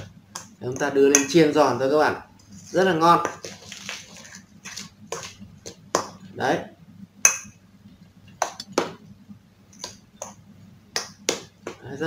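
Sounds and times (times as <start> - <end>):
metal spoon clinking on steel bowl: 0.8 - 1.4.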